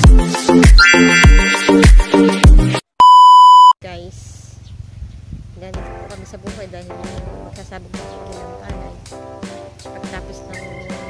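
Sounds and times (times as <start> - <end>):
electronic music with kick drum: 0.0 - 2.8, 7.0 - 11.0
loud high beep: 0.8 - 2.4, 3.0 - 3.8
outdoor background noise: 3.8 - 9.1
person speaking: 5.6 - 9.1, 9.8 - 10.7.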